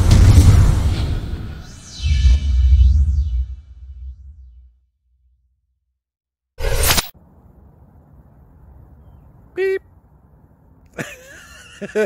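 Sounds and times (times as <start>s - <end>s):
loud whoosh: 0.0s - 4.8s.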